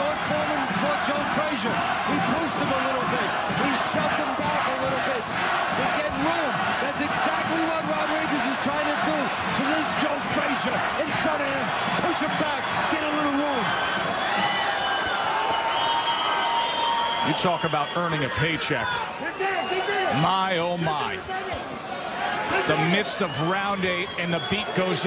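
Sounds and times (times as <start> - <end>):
crowd shouting and yelling: 0.0 - 25.0.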